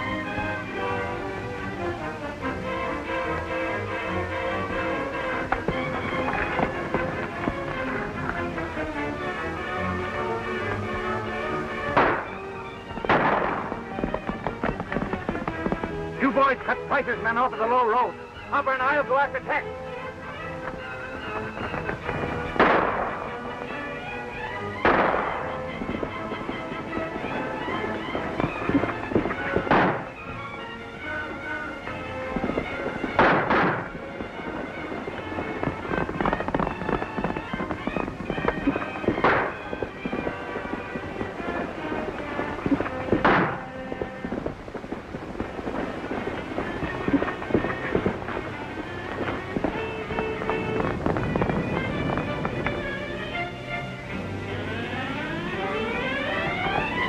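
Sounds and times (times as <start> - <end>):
background music: 0.0 - 57.0
gunshots: 11.9 - 17.5, 21.6 - 23.7, 24.8 - 30.5, 31.2 - 52.5.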